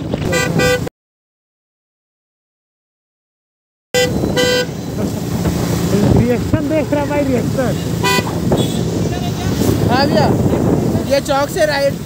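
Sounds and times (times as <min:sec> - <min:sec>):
traffic noise: 0:00.0 - 0:00.9, 0:03.9 - 0:12.0
vehicle horn honks: 0:00.2 - 0:00.9, 0:03.9 - 0:04.8, 0:07.7 - 0:09.0
voices: 0:05.8 - 0:12.0.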